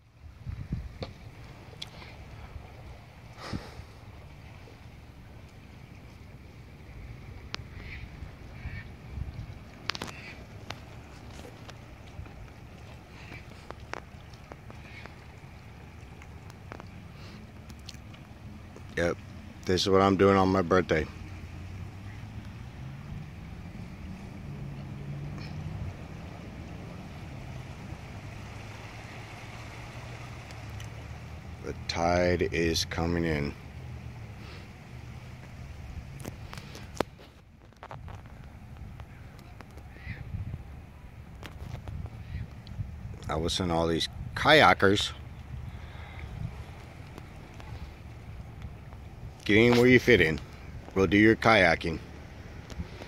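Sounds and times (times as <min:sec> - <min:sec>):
distant engine hum: 0:00.0 - 0:53.0
faint outdoor background noise: 0:00.0 - 0:53.0
wind: 0:00.0 - 0:53.0.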